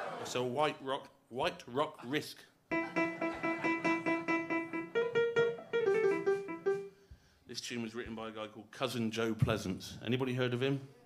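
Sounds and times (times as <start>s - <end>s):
piano playing: 2.7s - 7.0s.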